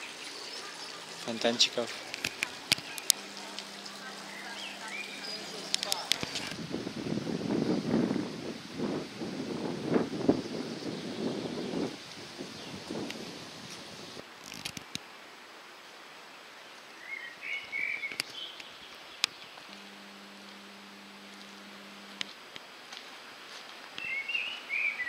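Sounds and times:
background hiss: 0.0 - 25.0
wind rumbling on microphone: 5.8 - 14.9.

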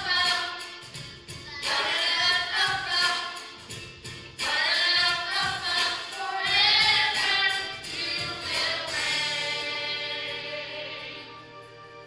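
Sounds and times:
children's choir singing: 0.0 - 0.7, 1.6 - 3.6, 4.4 - 12.0.

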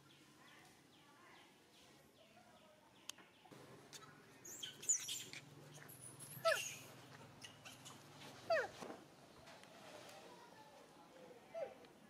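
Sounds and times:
monkey squealing: 6.3 - 8.7.

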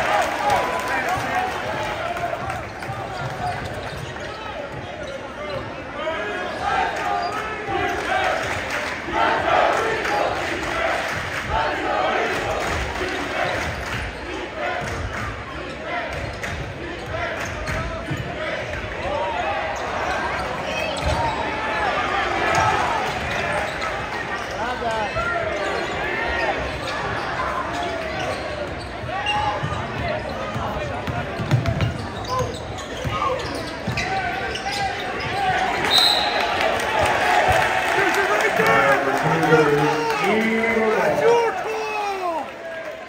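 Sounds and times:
crowd chatter and shouting: 0.0 - 43.0.

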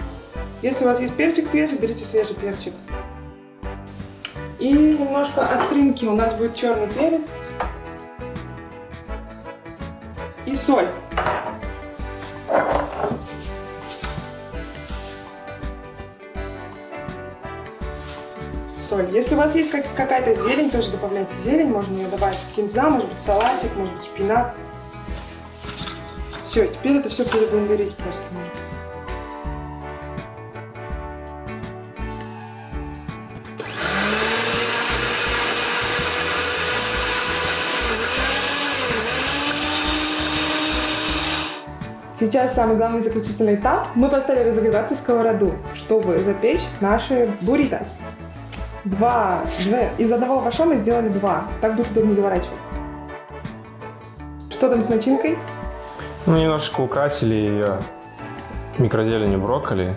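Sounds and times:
background music: 0.0 - 59.9
salt sprinkled into glass jar: 13.8 - 15.3, 17.9 - 18.4
blender running at high speed: 33.6 - 41.7.

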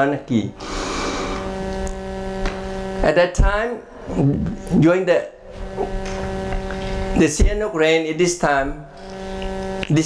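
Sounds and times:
steady hum with overtones: 0.0 - 10.0.

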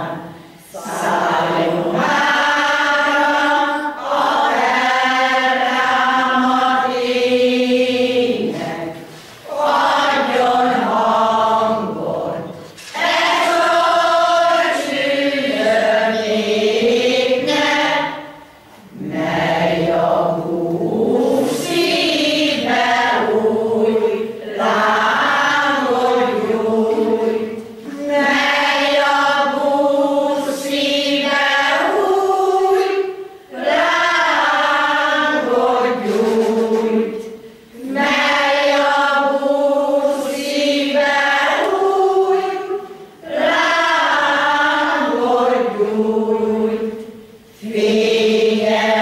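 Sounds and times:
choir singing unaccompanied: 0.0 - 49.0.

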